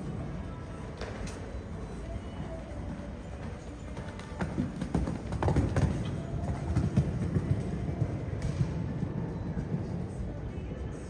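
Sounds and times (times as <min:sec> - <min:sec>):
horse hooves thudding on sand: 0:01.0 - 0:10.2.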